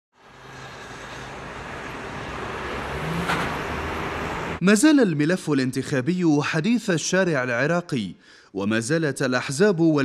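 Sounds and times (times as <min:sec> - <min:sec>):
cars driving on city road: 0:00.1 - 0:04.6.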